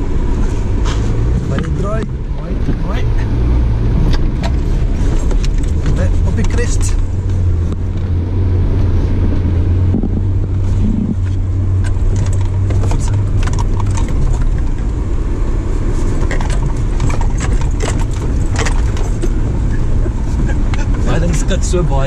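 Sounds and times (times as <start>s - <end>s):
vehicle engine and tyre noise: 0.0s - 22.0s.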